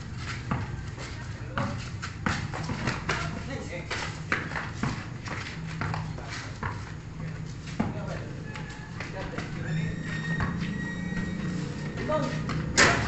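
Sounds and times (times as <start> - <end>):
basketball bouncing on concrete: 0.3 - 13.0.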